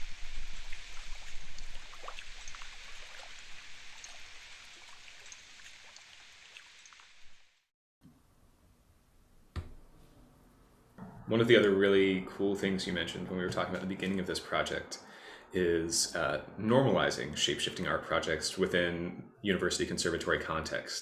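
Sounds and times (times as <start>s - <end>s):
trickling dripping water sound: 0.0s - 7.6s.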